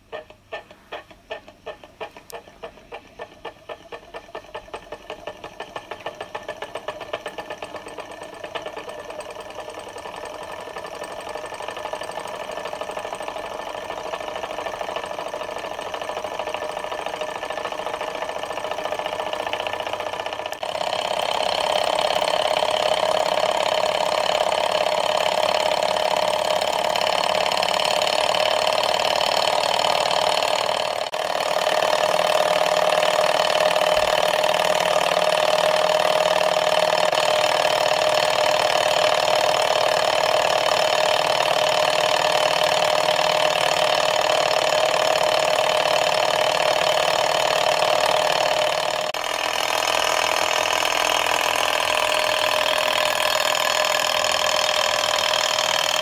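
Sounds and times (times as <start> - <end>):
stirling engine clattering: 0.0 - 56.0.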